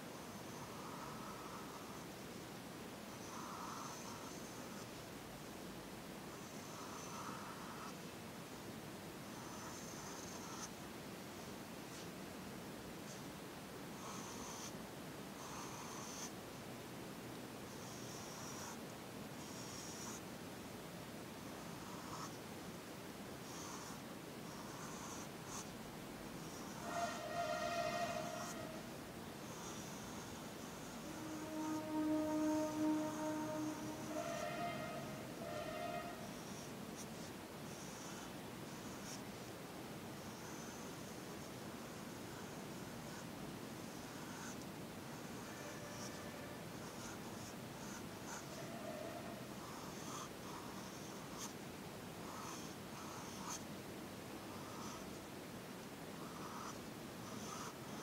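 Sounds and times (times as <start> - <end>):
pencil scratching on paper: 26.5 - 39.2, 41.8 - 51.6
steady held note: 26.8 - 29.0, 30.8 - 36.4, 45.5 - 46.7, 48.3 - 49.7.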